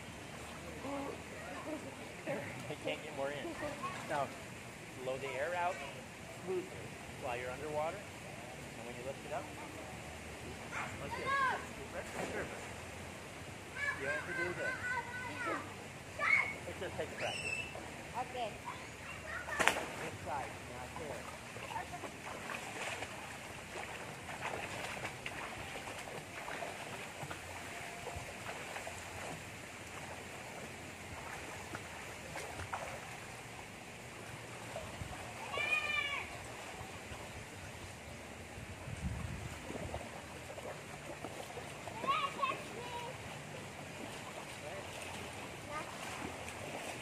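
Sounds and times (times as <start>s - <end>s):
swimmers splashing: 0.0s - 7.0s, 9.4s - 47.0s
faint distant voices: 0.0s - 38.6s, 39.6s - 47.0s
water washing: 10.5s - 47.0s.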